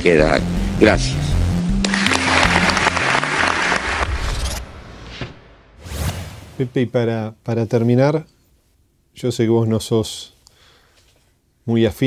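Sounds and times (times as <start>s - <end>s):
background music: 0.0s - 5.8s
audience applause: 1.8s - 4.6s.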